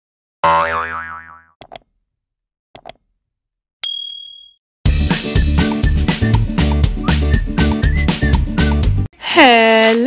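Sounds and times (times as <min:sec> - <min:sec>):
cartoon boing: 0:00.4 - 0:01.6.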